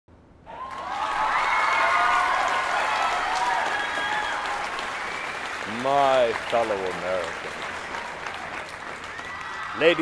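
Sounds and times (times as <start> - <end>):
crowd applauding and cheering: 0.5 - 10.0.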